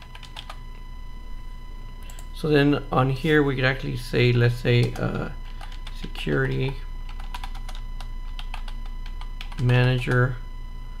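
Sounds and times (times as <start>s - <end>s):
low electrical hum: 0.0s - 11.0s
keyboard keystrokes: 5.6s - 9.9s.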